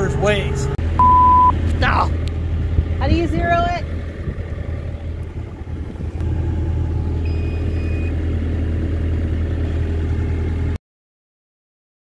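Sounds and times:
diesel engine idling: 0:00.0 - 0:10.8
short high beep: 0:01.0 - 0:01.6, 0:07.2 - 0:08.1.

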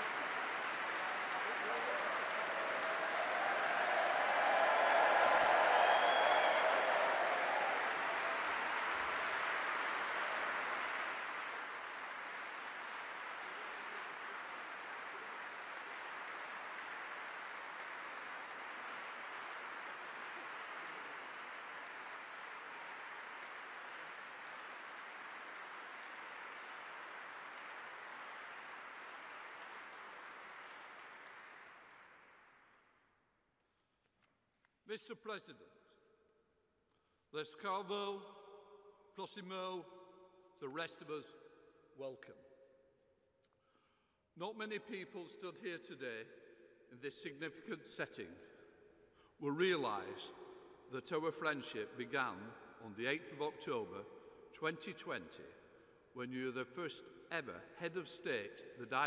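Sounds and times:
large audience applauding: 0:00.0 - 0:32.8.

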